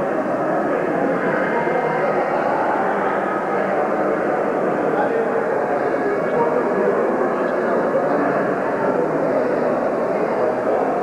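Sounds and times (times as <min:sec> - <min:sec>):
crowd murmuring in echoing hall: 0:00.0 - 0:11.0.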